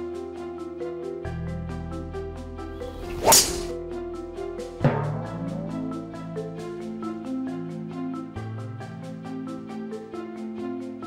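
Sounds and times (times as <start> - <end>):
repeating piano-like music: 0.0 - 11.0
golf club swing whoosh: 2.9 - 3.7.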